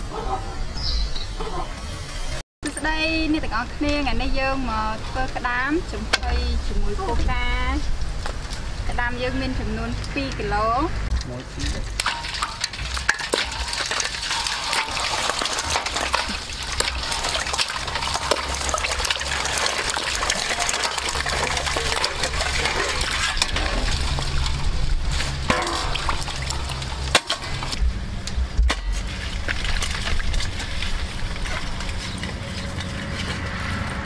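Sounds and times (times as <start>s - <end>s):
water splashing into steel basin: 11.7s - 27.8s, 28.7s - 34.0s.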